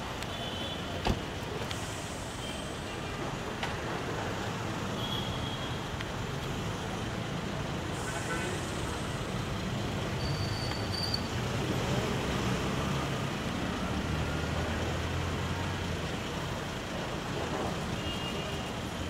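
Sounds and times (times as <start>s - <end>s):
street traffic noise: 0.0s - 19.0s.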